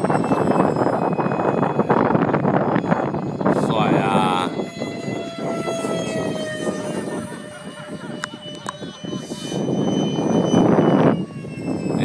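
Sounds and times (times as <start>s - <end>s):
electric jet fan whine passing: 0.0s - 12.0s.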